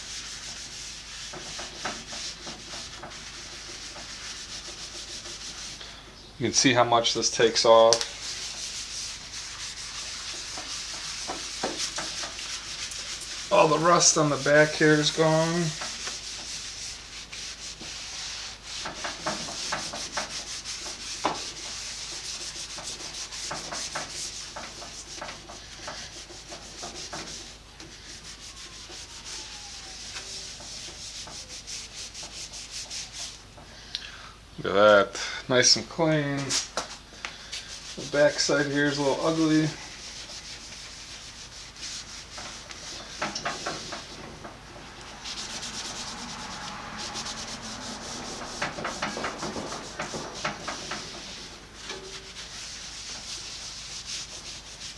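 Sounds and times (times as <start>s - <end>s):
rag rubbing on metal table: 0.0s - 5.8s, 7.2s - 33.7s, 37.5s - 54.9s.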